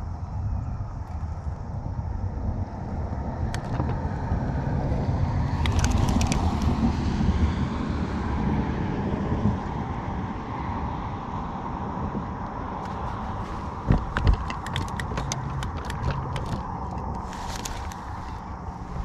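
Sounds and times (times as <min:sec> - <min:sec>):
wind buffeting microphone: 0:00.0 - 0:19.0
sharp clicks: 0:05.6 - 0:06.8, 0:13.8 - 0:18.0.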